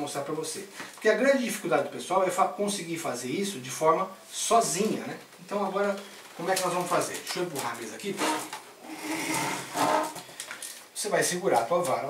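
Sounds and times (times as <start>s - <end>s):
table legs scraping tiled floor: 8.0s - 10.4s.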